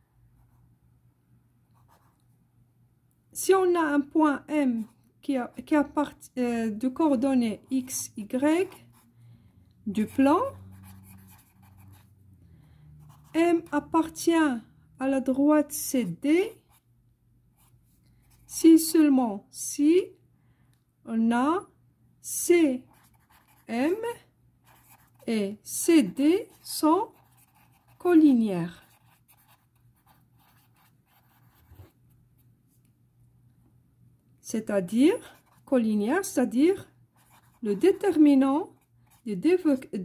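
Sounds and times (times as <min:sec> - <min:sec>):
marker pen scratching on paper: 0:01.8 - 0:02.2, 0:07.5 - 0:09.1, 0:09.9 - 0:12.1, 0:13.0 - 0:14.1, 0:17.6 - 0:18.6, 0:22.8 - 0:32.5, 0:35.1 - 0:40.0
steady low hum: 0:04.4 - 0:40.0.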